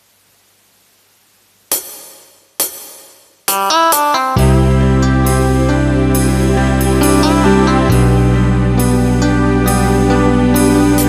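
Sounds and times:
faint hiss: 0.0 - 3.6
karaoke backing track: 3.5 - 11.0.

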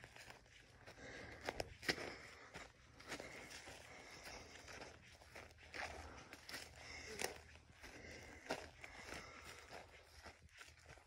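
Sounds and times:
footsteps crunching on forest floor: 0.0 - 11.0.

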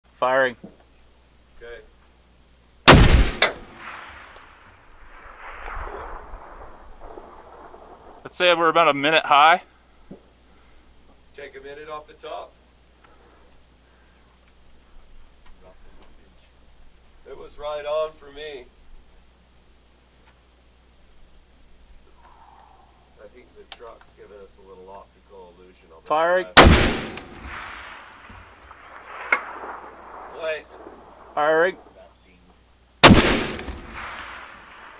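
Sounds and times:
sharp metallic clank: 2.9 - 4.8
rifle shot echo: 2.9 - 9.2, 26.6 - 32.2, 33.0 - 34.9.

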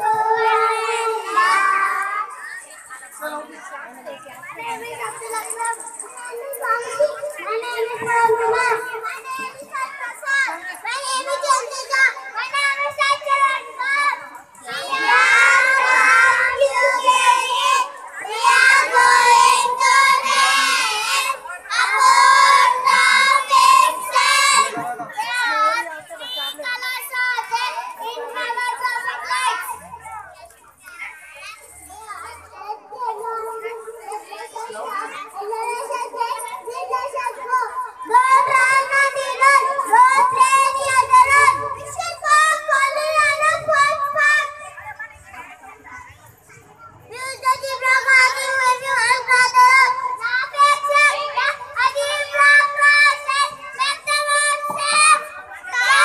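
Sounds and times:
boys singing into a microphone: 0.0 - 2.4, 7.8 - 8.9, 14.7 - 25.2, 35.8 - 44.5
children speaking into microphone: 0.0 - 56.0.

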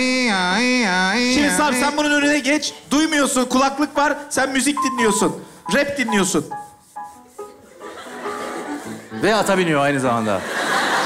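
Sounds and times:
keyboard playing held notes: 1.2 - 2.8, 4.5 - 9.3.

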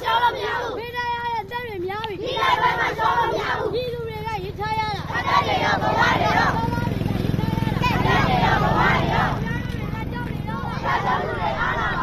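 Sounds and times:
crowd chanting slogans: 0.0 - 12.0
low steady engine: 0.0 - 12.0.

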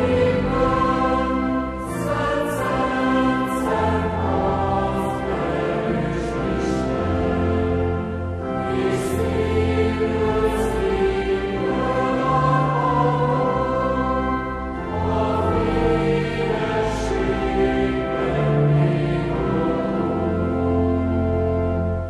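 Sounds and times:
choir singing a hymn: 0.0 - 21.9.

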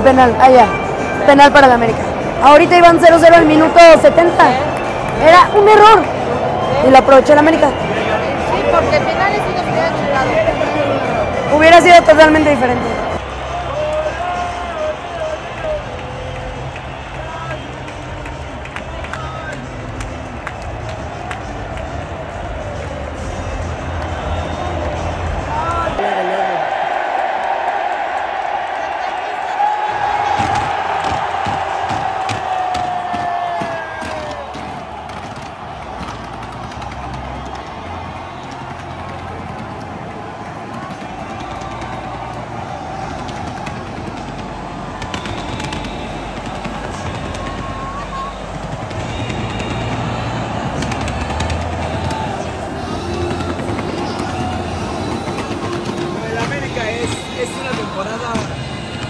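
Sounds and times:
music over public-address system: 0.0 - 26.0, 30.2 - 59.0
stadium crowd: 0.0 - 59.0
fireworks crackling and popping: 30.3 - 59.0.

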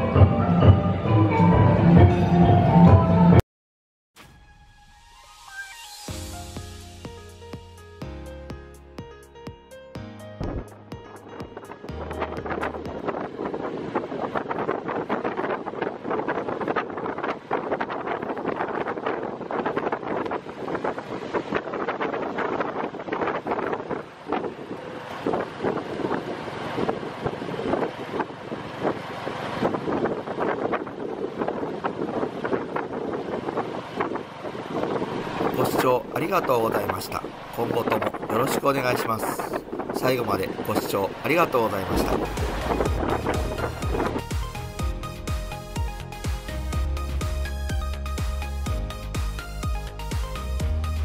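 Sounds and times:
wind buffeting microphone: 10.4 - 48.2
road noise: 10.4 - 51.0
motorcycle engine: 42.2 - 49.3.

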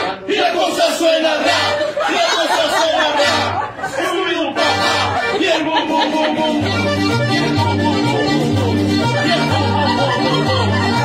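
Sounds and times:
people chattering: 0.0 - 11.0
accordion band playing: 1.4 - 11.0.

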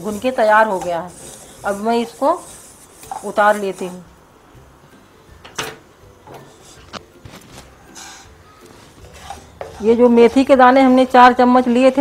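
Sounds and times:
dry rustle of spice seeds: 0.0 - 4.0.

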